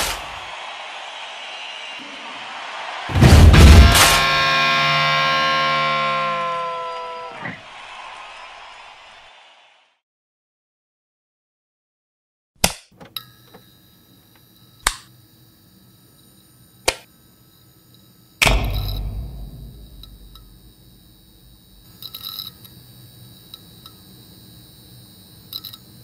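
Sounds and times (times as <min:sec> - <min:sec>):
loud deep boom: 0:18.4 - 0:21.8
faint steady high tones: 0:18.4 - 0:22.1.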